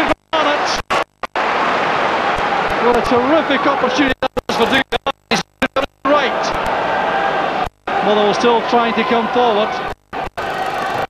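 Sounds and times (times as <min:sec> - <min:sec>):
crowd noise: 0:00.4 - 0:04.8, 0:06.1 - 0:11.0
person speaking on broadcast: 0:02.8 - 0:06.6.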